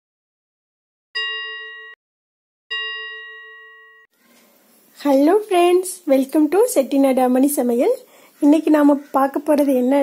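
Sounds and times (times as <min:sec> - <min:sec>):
bell-like ding: 0:01.2 - 0:02.0, 0:02.7 - 0:04.1.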